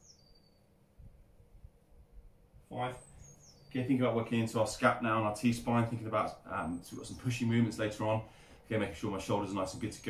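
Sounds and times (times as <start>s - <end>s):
faint whistled bird call: 0.0s - 0.8s.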